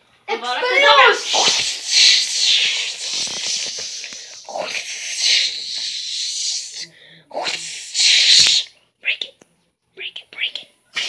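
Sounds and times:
child whispering and hissing: 0:00.5 - 0:09.4, 0:10.0 - 0:11.0.

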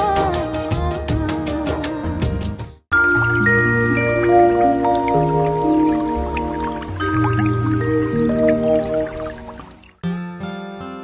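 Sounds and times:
drip-like plinks: 0:02.9 - 0:10.0
music with held chords: 0:02.9 - 0:11.0.

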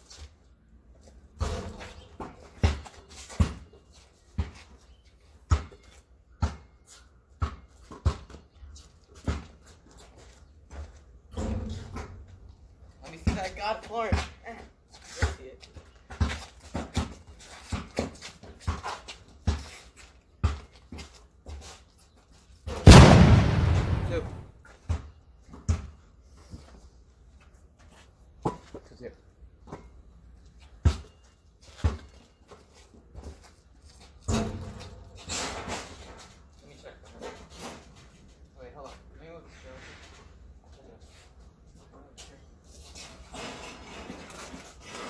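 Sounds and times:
basketball bouncing on concrete: 0:01.4 - 0:03.8, 0:05.5 - 0:06.7, 0:07.3 - 0:08.4.

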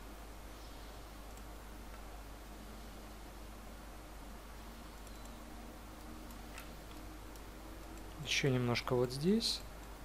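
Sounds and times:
low electrical hum and hiss: 0:00.0 - 0:10.0
computer mouse clicks: 0:01.3 - 0:02.1, 0:04.9 - 0:05.4, 0:06.0 - 0:08.2.

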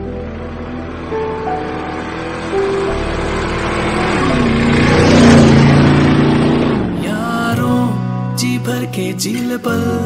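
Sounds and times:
motorcycle engine revving: 0:00.0 - 0:08.1.

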